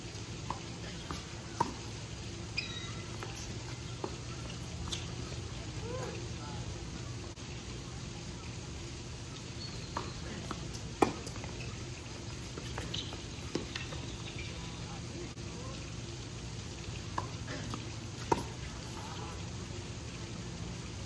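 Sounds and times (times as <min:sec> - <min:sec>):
background hiss: 0:00.0 - 0:21.0
rackets hitting tennis ball: 0:10.0 - 0:11.7.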